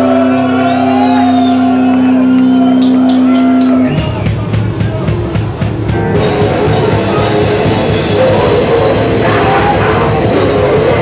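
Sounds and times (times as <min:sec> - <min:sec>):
punk band with drums: 0:00.0 - 0:11.0
distorted electric guitar drone: 0:05.6 - 0:11.0
guitar feedback whining: 0:05.8 - 0:11.0.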